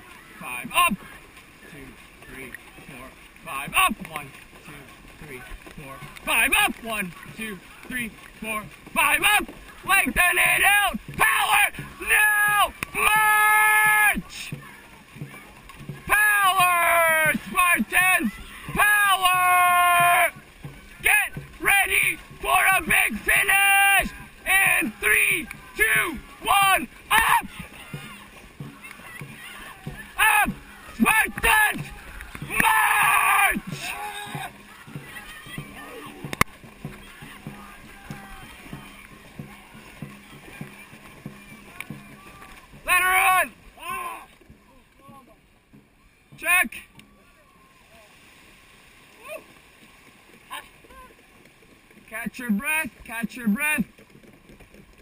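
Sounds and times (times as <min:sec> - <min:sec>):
faint voices: 0:00.0 - 0:54.0
paddles splashing in water: 0:00.0 - 0:55.0
person shouting long calls: 0:10.6 - 0:14.2, 0:16.1 - 0:20.3, 0:21.1 - 0:27.5, 0:32.5 - 0:34.5.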